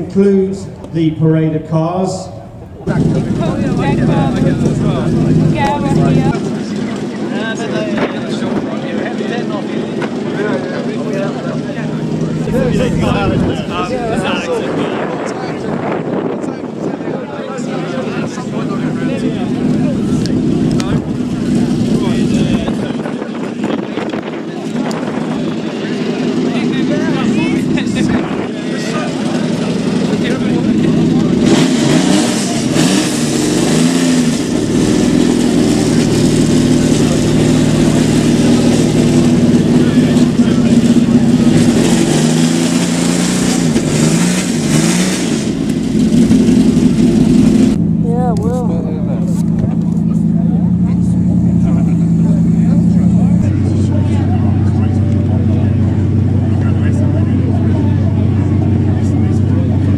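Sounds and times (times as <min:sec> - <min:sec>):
crowd chatter: 0:00.0 - 0:59.9
car engine revving: 0:02.4 - 0:59.9.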